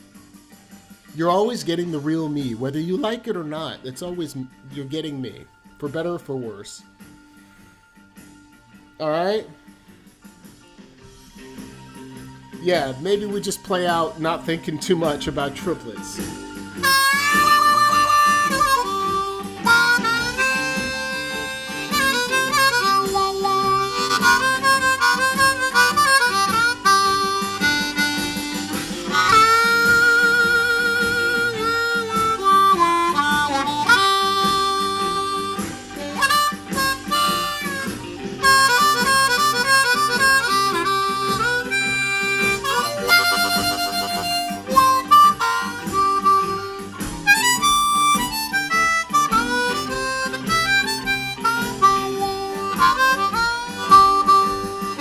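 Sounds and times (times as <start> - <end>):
blues harmonica: 9.8 - 55.0.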